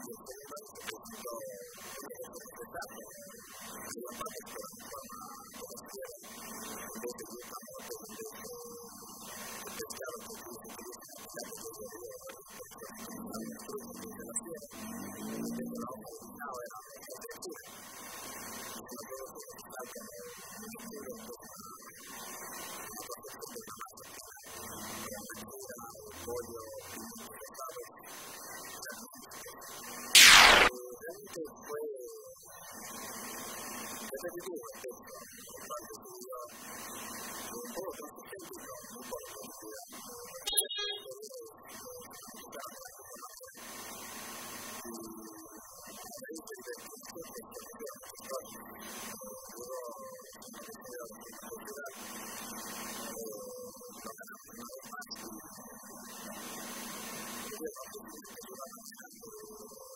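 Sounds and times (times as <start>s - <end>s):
man talking into a microphone: 0.0s - 6.3s, 6.9s - 8.9s, 9.6s - 17.7s, 18.8s - 21.7s, 25.1s - 27.9s, 30.7s - 32.3s, 34.1s - 36.5s
steady hiss: 29.9s - 30.7s
loud burst of noise: 30.2s - 30.7s.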